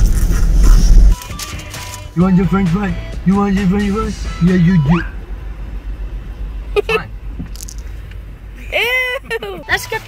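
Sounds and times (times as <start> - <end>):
loud low rumbling: 0.0 - 1.2.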